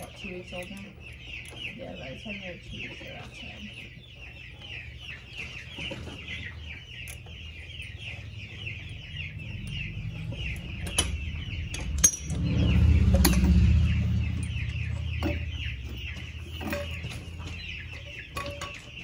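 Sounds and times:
baby chicks peeping: 0:00.0 - 0:19.0.

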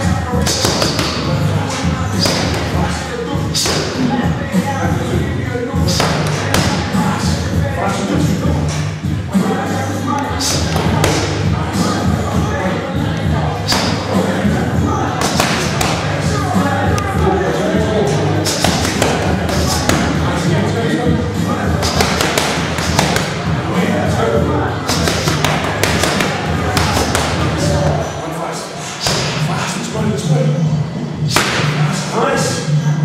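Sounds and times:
background music: 0:00.0 - 0:33.0
boxing gloves punching mitts: 0:00.4 - 0:01.3, 0:02.2 - 0:02.9, 0:05.8 - 0:06.9, 0:13.7 - 0:14.1, 0:15.2 - 0:16.2, 0:18.5 - 0:20.3, 0:21.7 - 0:23.5, 0:24.9 - 0:27.8, 0:29.0 - 0:29.4, 0:31.3 - 0:31.8.

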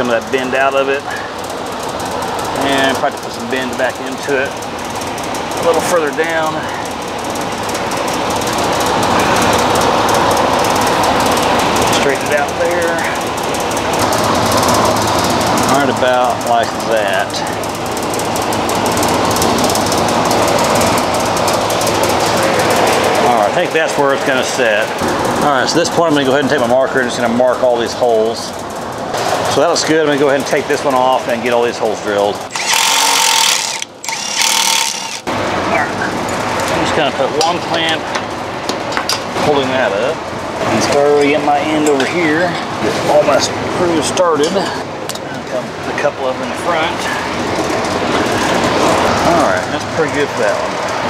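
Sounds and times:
loud rattling machine noise: 0:00.0 - 0:51.0
pneumatic drill through sheet metal: 0:32.5 - 0:35.3.

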